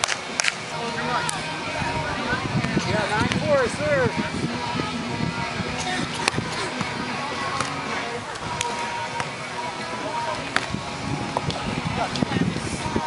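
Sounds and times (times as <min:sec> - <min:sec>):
background music: 0:00.0 - 0:13.0
people chattering: 0:00.0 - 0:13.0
hands hitting volleyball: 0:07.5 - 0:07.8.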